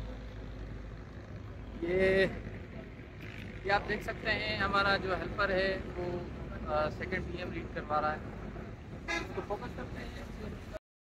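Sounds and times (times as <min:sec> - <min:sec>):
low rumble of outdoor background: 0:00.0 - 0:10.8.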